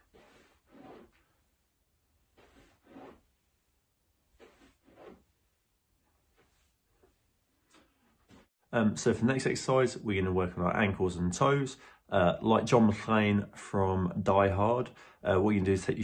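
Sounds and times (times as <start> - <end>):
soft breath-like rustles: 0.0 - 8.5.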